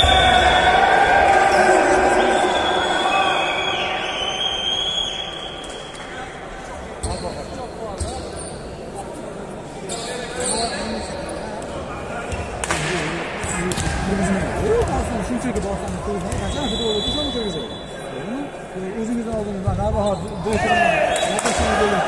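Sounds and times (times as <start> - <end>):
voices in large hall: 0.0 - 22.0.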